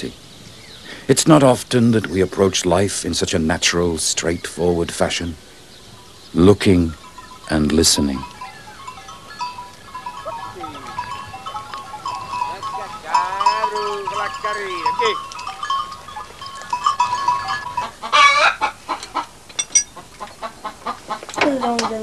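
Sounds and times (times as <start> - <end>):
goats bleating: 10.2 - 11.2
rooster crowing: 10.2 - 12.0, 18.1 - 18.7.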